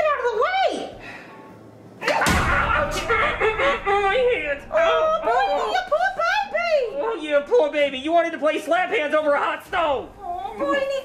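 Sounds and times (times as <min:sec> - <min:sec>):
giggling: 0:02.0 - 0:05.7.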